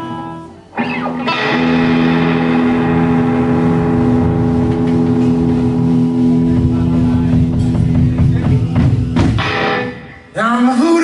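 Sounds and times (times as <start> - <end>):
overdriven electric guitar chord: 0.0 - 8.4
bass and drums playing: 0.8 - 10.2.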